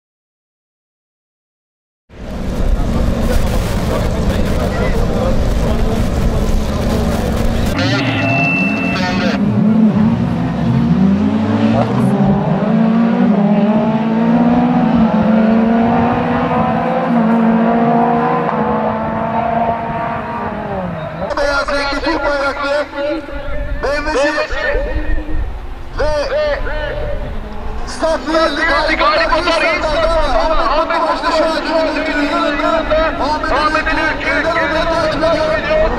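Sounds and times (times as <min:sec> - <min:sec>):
race car engines roaring: 0:02.1 - 0:35.9.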